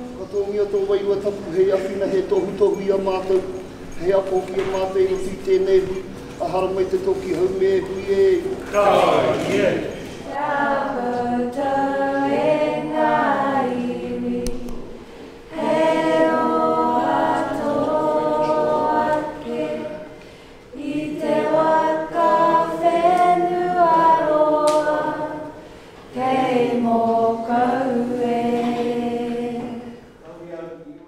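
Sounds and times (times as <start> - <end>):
group singing unaccompanied: 0.0 - 30.2.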